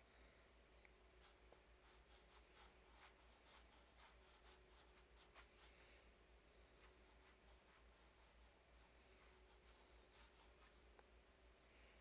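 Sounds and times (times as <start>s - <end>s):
paintbrush strokes on canvas: 1.2s - 11.0s.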